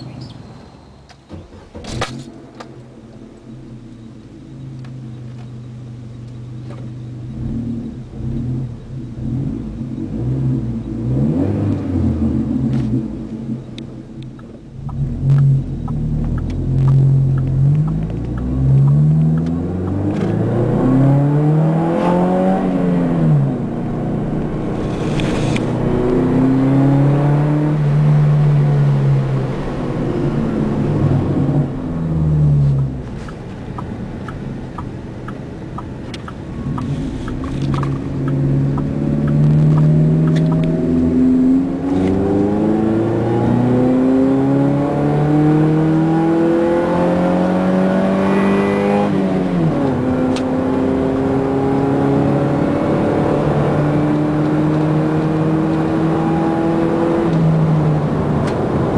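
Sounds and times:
truck engine revving: 0:14.8 - 0:58.9.

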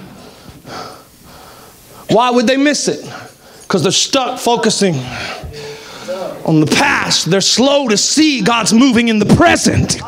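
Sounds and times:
faint room noise: 0:00.0 - 0:10.0
man inhaling sharply: 0:00.1 - 0:02.1, 0:05.0 - 0:06.3.

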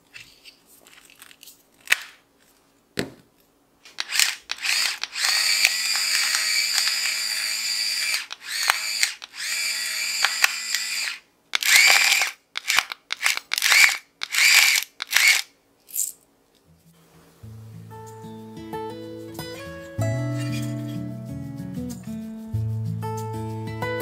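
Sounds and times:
electric grinder motor whining: 0:04.1 - 0:12.3.

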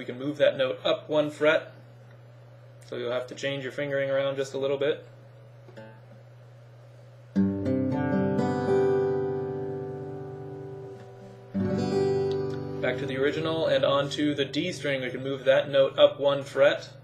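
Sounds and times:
acoustic guitar chord strummed: 0:07.3 - 0:17.0.

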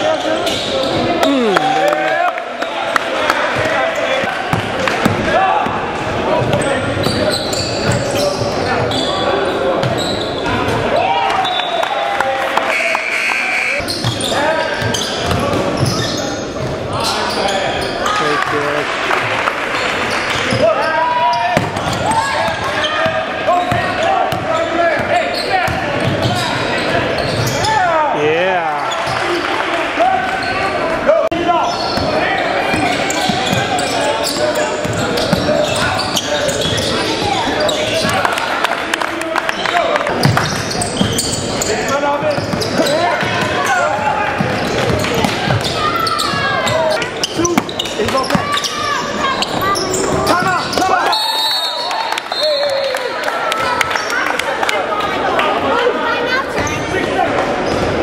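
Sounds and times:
sneakers squeaking: 0:00.0 - 0:01.8, 0:03.5 - 0:11.8, 0:12.6 - 0:18.6, 0:19.8 - 0:27.9, 0:28.8 - 0:29.4, 0:31.6 - 0:38.4, 0:39.5 - 0:52.9, 0:56.4 - 0:58.0
voices calling out: 0:00.2 - 0:02.4, 0:39.6 - 0:58.0.

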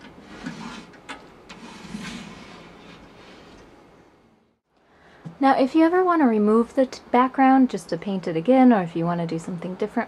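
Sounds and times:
plastic rim scraping wood: 0:00.0 - 0:03.6.

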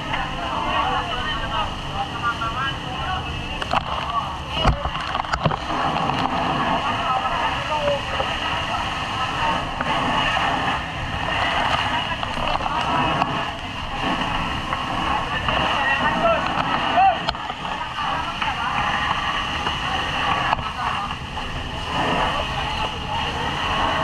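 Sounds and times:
fire truck rumbling: 0:00.0 - 0:24.0
people talking: 0:00.0 - 0:24.0.

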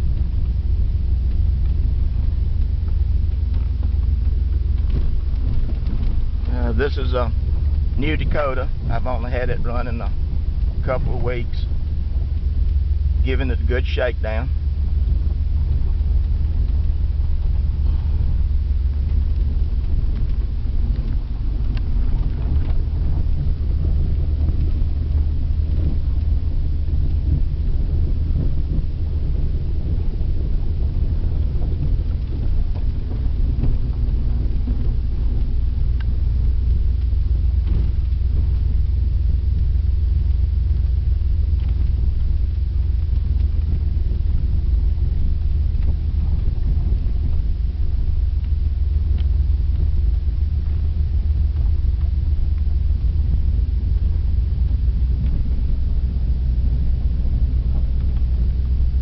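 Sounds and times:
truck engine and road rumble: 0:00.0 - 0:59.0.

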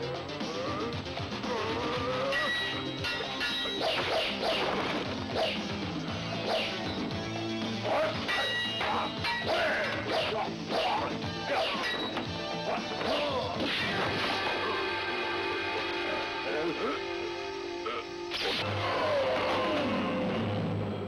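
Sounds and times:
background music: 0:00.0 - 0:21.0
shouted battle cries: 0:18.6 - 0:20.4.

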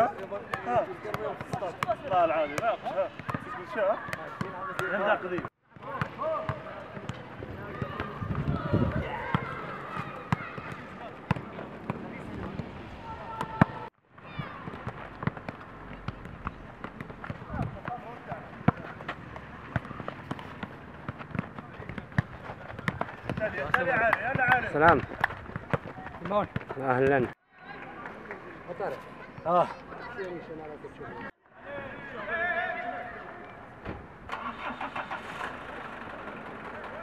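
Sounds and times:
footballs being kicked: 0:13.4 - 0:27.4
thump: 0:33.8 - 0:34.1.

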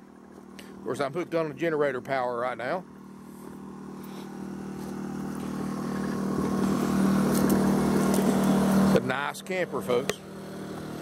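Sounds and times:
portable generator humming: 0:00.0 - 0:11.0.

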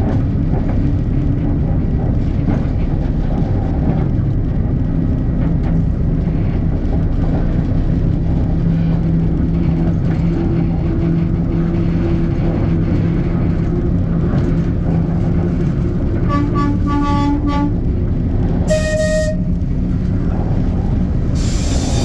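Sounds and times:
locomotive rumbling along track: 0:00.0 - 0:22.0.

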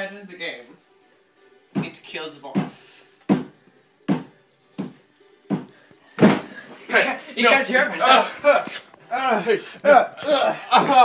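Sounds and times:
hard knocks: 0:03.3 - 0:06.5.

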